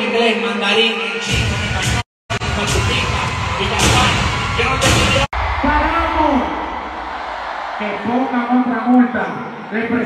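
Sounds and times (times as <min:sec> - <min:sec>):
crowd noise in a reverberant hall: 0:00.0 - 0:10.0
man speaking over a pa system: 0:07.8 - 0:10.0.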